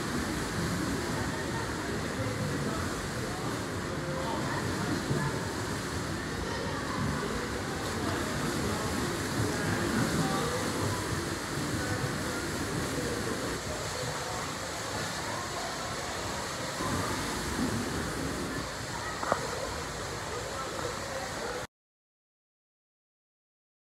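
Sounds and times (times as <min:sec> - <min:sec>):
spectators chatter: 0:00.0 - 0:21.7
swimmers splashing: 0:00.1 - 0:21.6.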